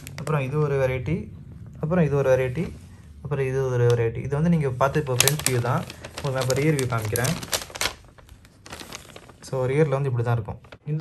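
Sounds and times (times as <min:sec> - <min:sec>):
plastic sleeves crackling and clicking: 0:00.0 - 0:00.4, 0:04.9 - 0:11.0
man talking: 0:00.2 - 0:07.5, 0:09.4 - 0:11.0.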